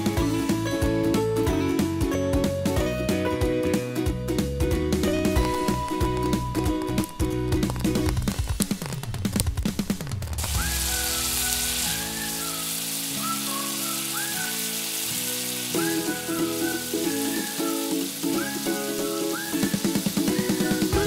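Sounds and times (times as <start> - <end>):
background music with rising slides: 4.0 - 21.0
bread sizzling in frying pan: 5.2 - 21.0.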